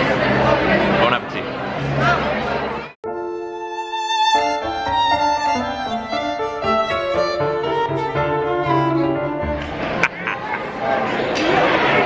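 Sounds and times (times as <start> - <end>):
dining room chatter: 0.0 - 3.0, 9.7 - 12.0
violin and cello music: 3.1 - 10.0.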